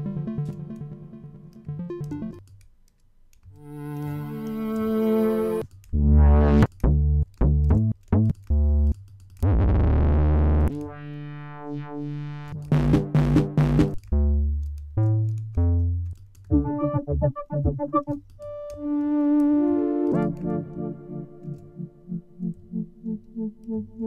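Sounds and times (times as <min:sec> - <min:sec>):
arpeggiated synth notes: 0:00.0 - 0:02.4, 0:09.5 - 0:14.4, 0:16.5 - 0:24.0
plucked synth notes: 0:00.0 - 0:02.4, 0:03.6 - 0:24.0
synth chords: 0:00.0 - 0:02.4, 0:03.6 - 0:24.0
buzzy synth bass: 0:05.4 - 0:18.2
rhythmic synth pulses: 0:08.6 - 0:14.5, 0:16.5 - 0:24.0.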